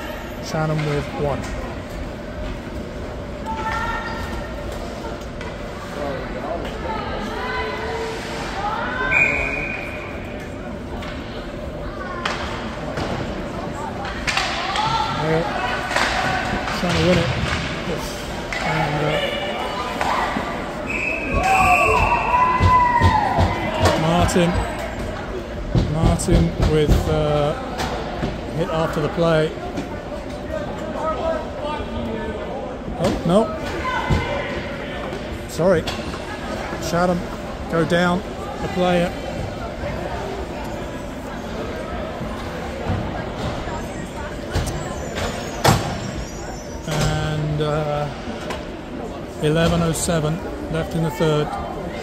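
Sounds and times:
people shouting: 21.2s - 23.9s.

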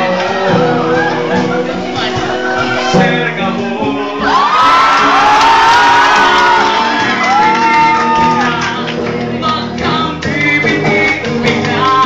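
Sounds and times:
strummed acoustic guitars: 0.0s - 12.0s
audience shouting and whooping: 4.2s - 8.7s.

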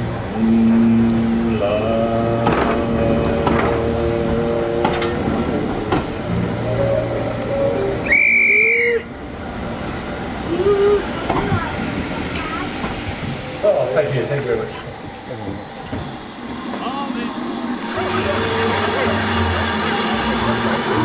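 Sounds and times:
railway coaches rolling past: 0.0s - 21.0s
steady pitched whistling: 7.5s - 9.1s
shrill high whistle: 8.0s - 9.1s.

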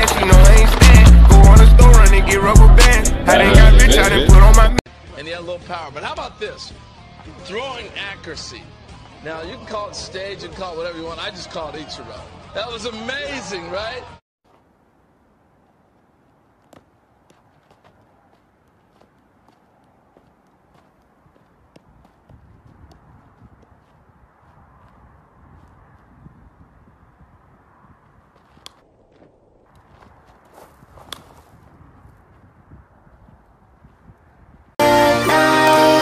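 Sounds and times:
footsteps on gravel: 14.4s - 14.7s, 15.6s - 26.4s, 28.0s - 34.0s
soft taps of a baseball: 16.3s - 24.0s.

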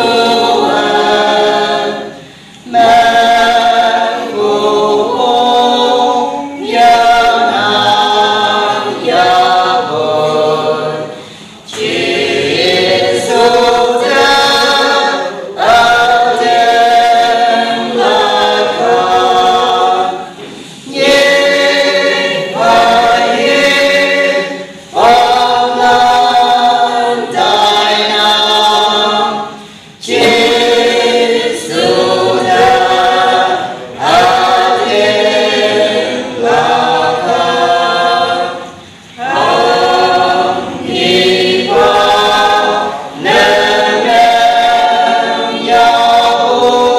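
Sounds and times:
choir singing a cappella: 0.0s - 46.9s.

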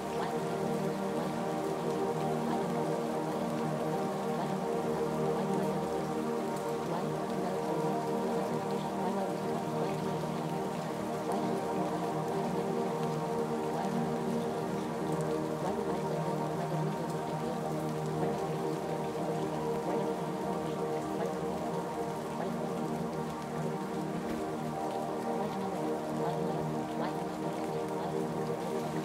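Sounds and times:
rain: 0.0s - 29.0s
sustained ambient music tones: 0.0s - 29.0s.

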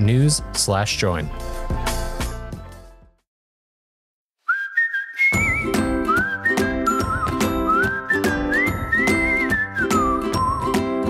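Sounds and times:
whistled melody: 4.5s - 11.0s.

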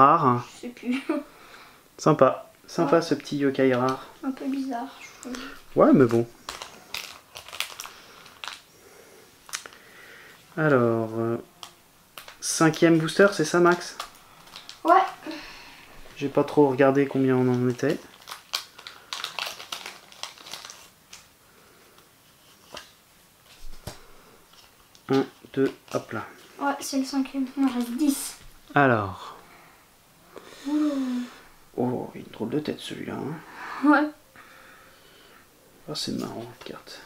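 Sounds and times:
foil wrapper crinkling: 3.8s - 8.7s, 9.4s - 9.8s, 11.5s - 21.3s, 22.4s - 26.5s, 27.2s - 28.4s
foil pack tearing and crinkling: 6.0s - 8.7s, 13.7s - 15.4s, 17.4s - 21.3s.

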